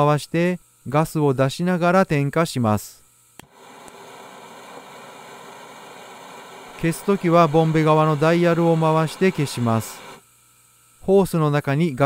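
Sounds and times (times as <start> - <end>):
gas burner hissing: 3.4 - 10.2.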